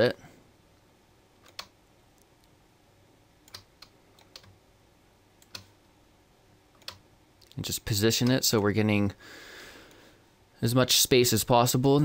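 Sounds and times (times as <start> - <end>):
faint mouse and keyboard clicks: 1.4 - 2.5, 6.8 - 7.6.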